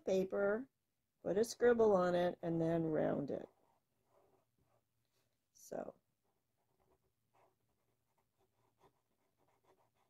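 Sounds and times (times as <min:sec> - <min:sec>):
felt-tip marker scratching on paper: 0:03.4 - 0:04.9, 0:06.5 - 0:10.0.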